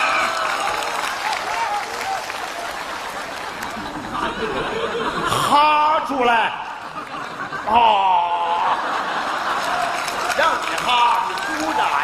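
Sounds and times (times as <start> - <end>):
audience applauding: 0.0 - 5.4, 6.3 - 12.0
audience laughing: 2.6 - 11.7.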